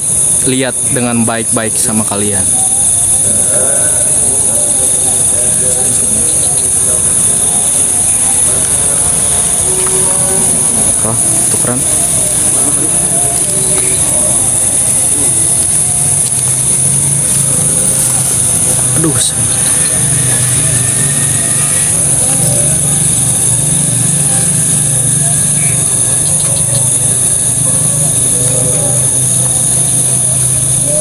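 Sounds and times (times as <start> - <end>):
high-pitched drone: 0.0 - 31.0
low hum: 0.0 - 31.0
quiet voices: 0.0 - 31.0.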